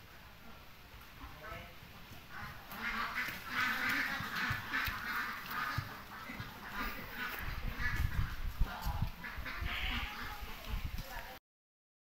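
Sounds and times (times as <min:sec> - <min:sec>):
animal short calls: 0:09.3 - 0:10.6.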